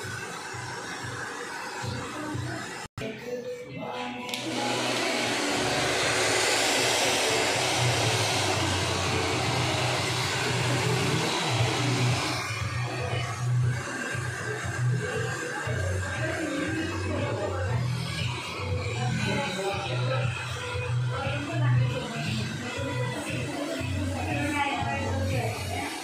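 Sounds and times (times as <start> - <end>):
hair dryer blowing: 0.0 - 2.9, 4.3 - 20.4.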